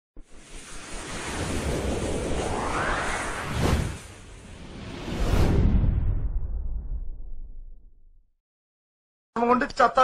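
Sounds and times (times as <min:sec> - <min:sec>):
whoosh with low rumble: 0:00.2 - 0:08.2.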